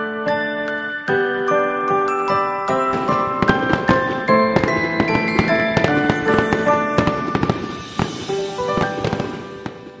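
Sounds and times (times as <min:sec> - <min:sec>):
firework pops and crackles: 0:02.8 - 0:10.0.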